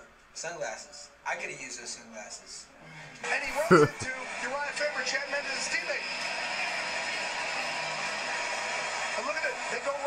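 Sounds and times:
steady hissing background noise: 0:00.0 - 0:04.1.

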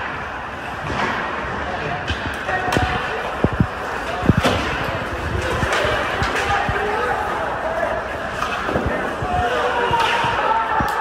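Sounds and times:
skates on ice: 0:00.0 - 0:11.0
voices in a rink: 0:00.0 - 0:11.0.

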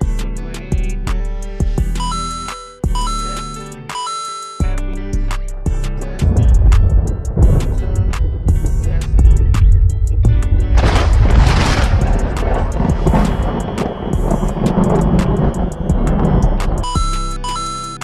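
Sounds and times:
hip-hop beat with deep bass: 0:00.0 - 0:18.0
rushing noise: 0:06.2 - 0:17.6.

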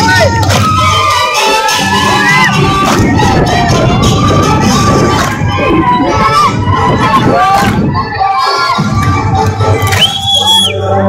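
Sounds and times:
children shouting and cheering: 0:00.0 - 0:11.0.

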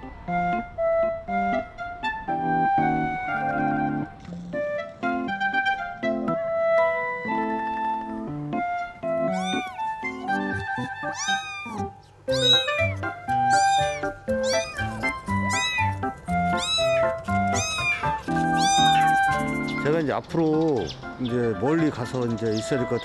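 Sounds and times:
background music with held notes: 0:00.0 - 0:23.0
kittens mewing: 0:09.2 - 0:19.8.

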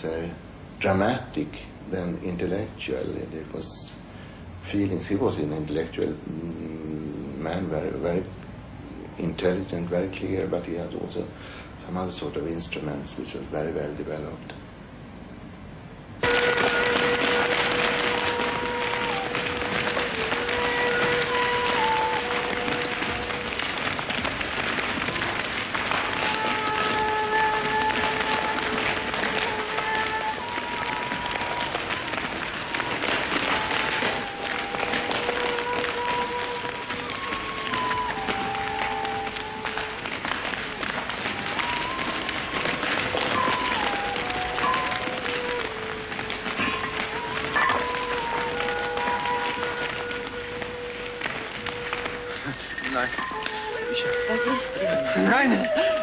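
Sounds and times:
dense steady hiss: 0:00.0 - 0:56.0
long held tones: 0:16.2 - 0:56.0.

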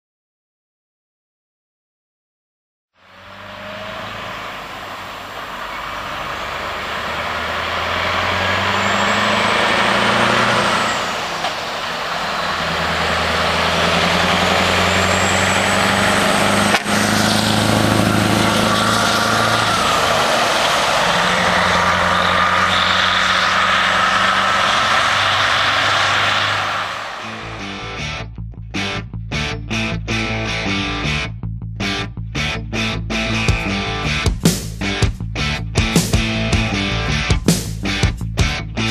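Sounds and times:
truck engine accelerating: 0:03.0 - 0:38.9.

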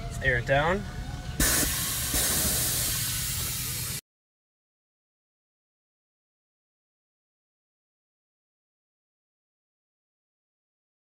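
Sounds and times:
air suspension hiss: 0:01.4 - 0:04.0.

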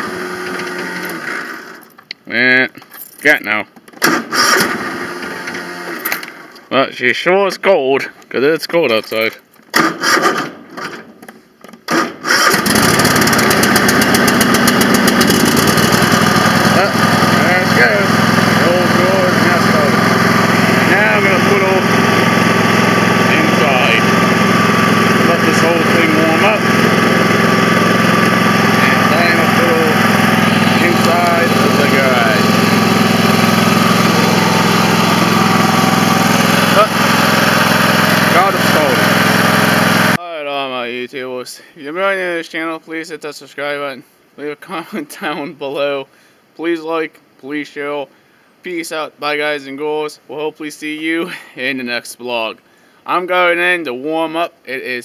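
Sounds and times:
lawn tractor engine running: 0:00.0 - 0:02.1, 0:04.0 - 0:06.5, 0:11.9 - 0:40.2
engine cranking: 0:03.9 - 0:06.4, 0:11.8 - 0:40.2.

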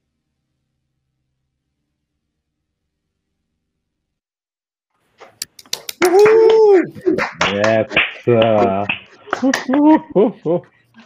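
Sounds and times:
sharp hand claps: 0:05.2 - 0:10.1
person saying ooh: 0:06.0 - 0:07.2.

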